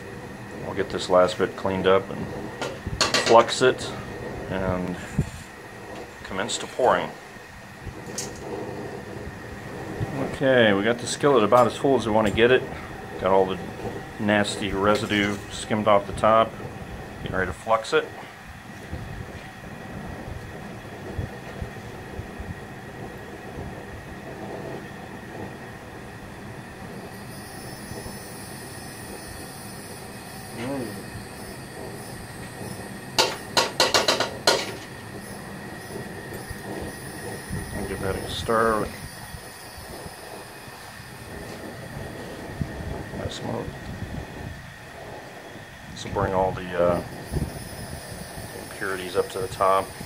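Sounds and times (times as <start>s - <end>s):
high hiss of smoking flux: 0.0s - 50.0s
propane burner noise: 0.0s - 50.0s
sharp metallic squeals: 27.0s - 41.3s, 46.5s - 50.0s.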